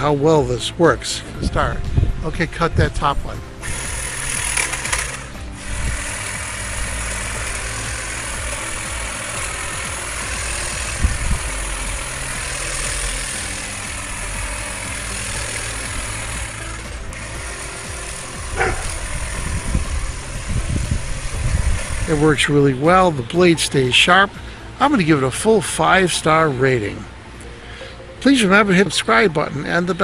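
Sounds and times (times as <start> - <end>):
background music: 0.0 - 30.0
electric hedge trimmer cutting: 3.0 - 25.6.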